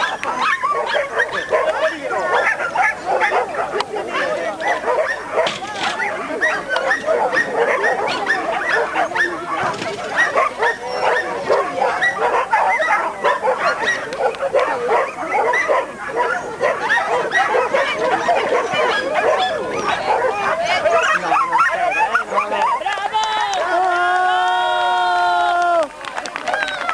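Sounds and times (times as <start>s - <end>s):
dog barking rapidly: 0.0s - 22.8s.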